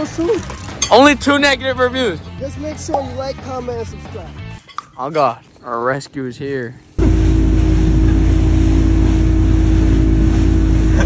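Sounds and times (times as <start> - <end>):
motorboat engine drone: 7.0 - 11.0
wind and water rushing: 7.0 - 11.0.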